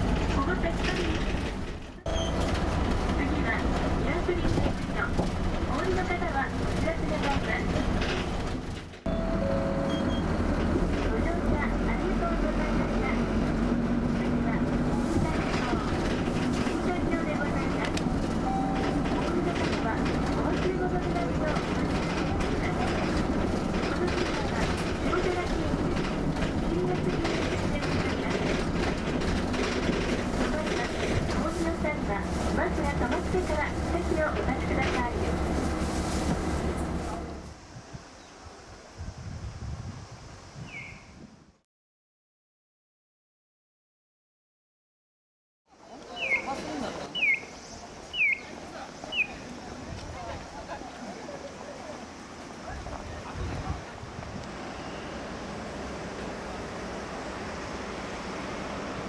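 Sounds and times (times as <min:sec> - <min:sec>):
road and rattle noise: 0:00.0 - 0:38.1, 0:45.8 - 0:59.0
bus engine drone: 0:00.0 - 0:39.3, 0:45.8 - 0:59.0.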